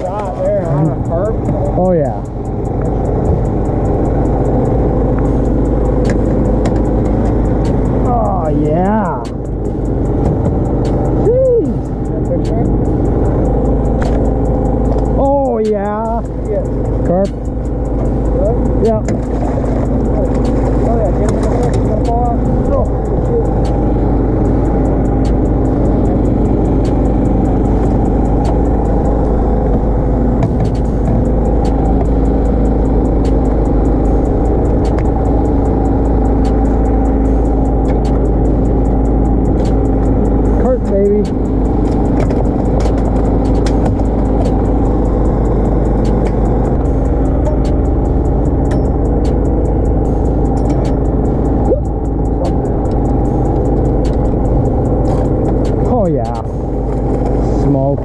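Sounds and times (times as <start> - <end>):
boat engine droning: 0.0 - 58.0
short wavering pitched sounds: 0.0 - 58.0.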